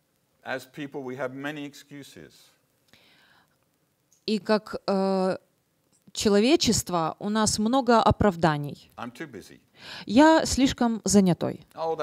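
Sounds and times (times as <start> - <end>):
man speaking: 0.5 - 2.6, 9.0 - 9.7, 11.8 - 12.0
faint breathy sound: 2.9 - 3.6.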